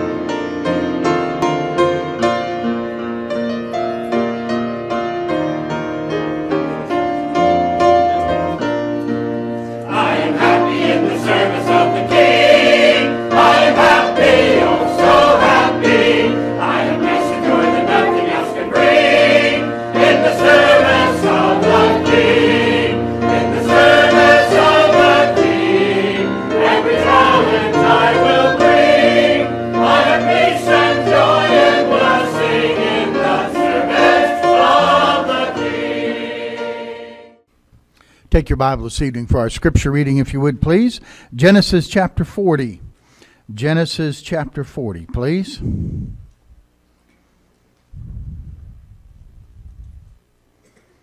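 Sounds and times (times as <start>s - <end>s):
choir singing a hymn: 6.4s - 37.5s.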